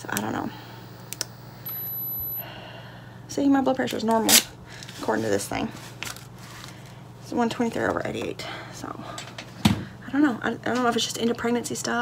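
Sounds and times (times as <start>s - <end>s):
blood pressure monitor clicks: 0.0s - 2.4s
blood pressure monitor steady tone: 0.0s - 2.6s.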